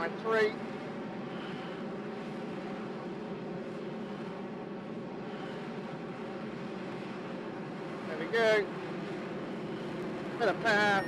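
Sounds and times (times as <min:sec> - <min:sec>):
jet engine hum: 0:00.0 - 0:11.0.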